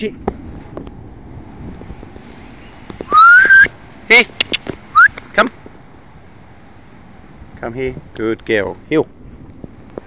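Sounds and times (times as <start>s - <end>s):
person whistling: 3.1s - 3.7s.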